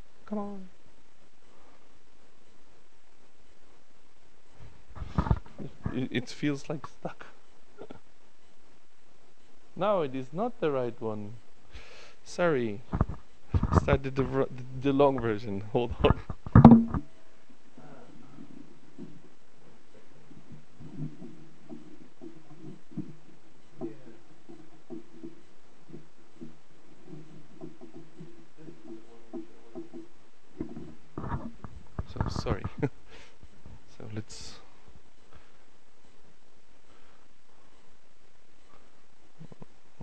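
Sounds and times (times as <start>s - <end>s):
microphone pops: 4.9s - 6.0s, 12.8s - 14.0s, 16.0s - 17.1s, 23.8s - 32.9s
soft low knocks: 15.1s - 17.1s, 20.1s - 32.9s
muffled low voice murmuring: 28.6s - 29.9s, 32.0s - 32.8s.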